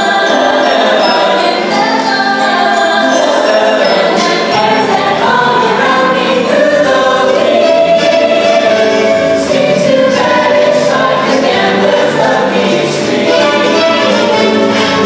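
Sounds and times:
backing music: 0.0 - 15.0
mixed choir singing: 0.0 - 15.0.

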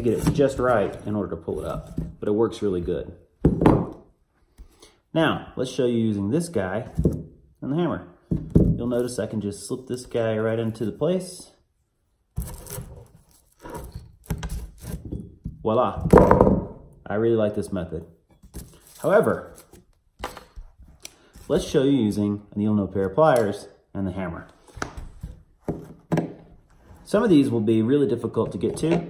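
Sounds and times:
metal scraping on metal and wood: 0.0 - 2.1, 12.4 - 15.3, 18.2 - 20.6.

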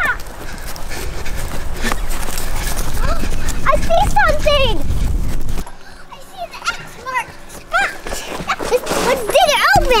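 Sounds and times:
steady low rumble: 0.0 - 8.0
running footsteps: 0.0 - 10.0.

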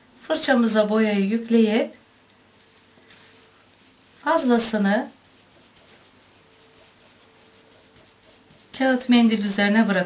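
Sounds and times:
paint brush wiped on paper towel: 3.2 - 9.0.

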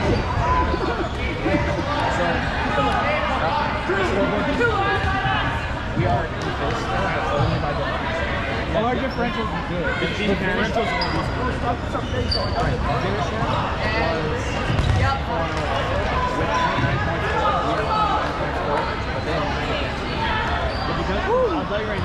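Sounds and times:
players' voices and calls: 0.0 - 22.0
dodgeballs thudding: 14.5 - 15.9.

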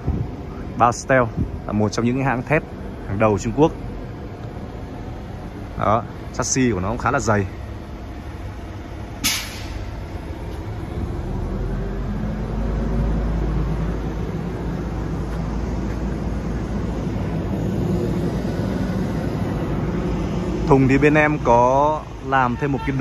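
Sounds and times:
diesel truck engine rumble: 0.0 - 23.0
short sharp hiss: 9.2 - 9.9.

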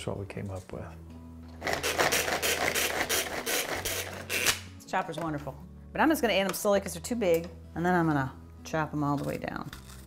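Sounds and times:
pull-cord food chopper whirring: 1.6 - 4.6.

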